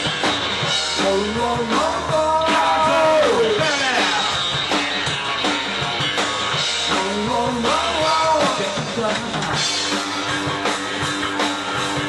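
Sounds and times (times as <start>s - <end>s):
drum kit: 0.0s - 12.0s
electric bass: 0.0s - 12.0s
electric guitar: 0.0s - 12.0s.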